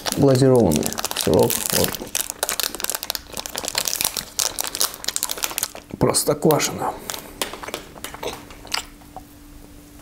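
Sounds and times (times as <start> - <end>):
foil wrapper crinkling: 0.0 - 8.2.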